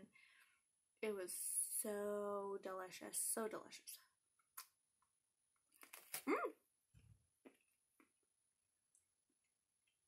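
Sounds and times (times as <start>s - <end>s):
woman humming mm: 6.3s - 6.5s.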